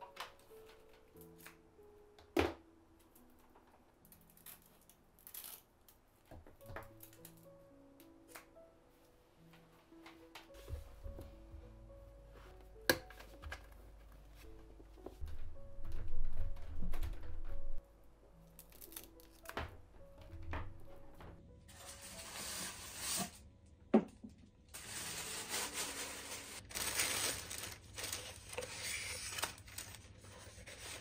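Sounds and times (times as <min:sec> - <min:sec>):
soft background music: 0:00.0 - 0:31.0
tissue paper rustling: 0:21.7 - 0:23.4, 0:24.8 - 0:31.0.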